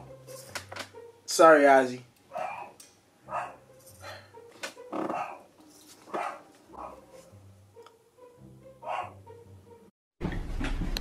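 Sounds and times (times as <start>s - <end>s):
dog barking: 2.3s - 4.2s, 5.1s - 5.5s, 6.1s - 7.2s, 8.8s - 9.2s.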